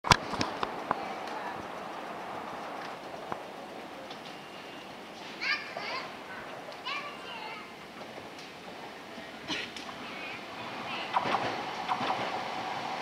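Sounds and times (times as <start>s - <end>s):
street ambience hum: 0.0s - 13.0s
children calling out: 5.3s - 7.8s.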